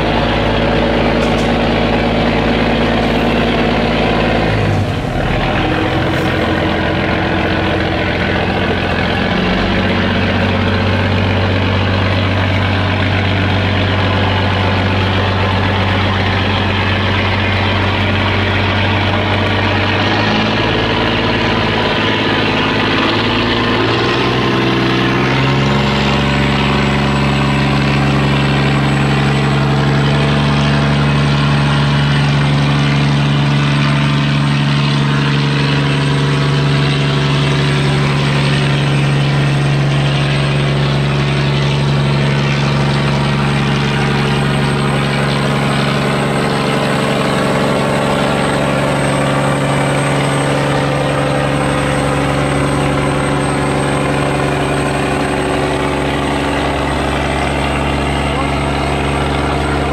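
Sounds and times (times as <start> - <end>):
boat engines running: 0.0 - 59.9.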